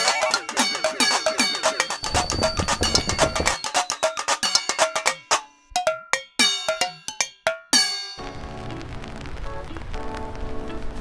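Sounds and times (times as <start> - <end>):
ringing percussive jingle: 0.6 - 8.2.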